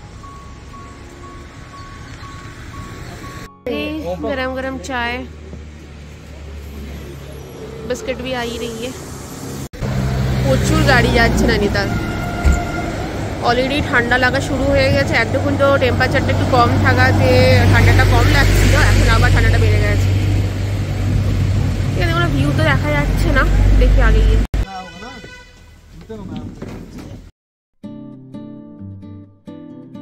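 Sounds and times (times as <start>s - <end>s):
cars driving past: 0.0s - 24.5s
road traffic hum: 0.0s - 27.3s.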